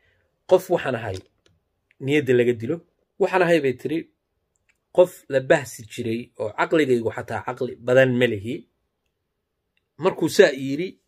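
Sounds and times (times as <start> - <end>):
man speaking: 0.5 - 1.3, 1.9 - 4.2, 4.9 - 8.7, 10.0 - 11.0.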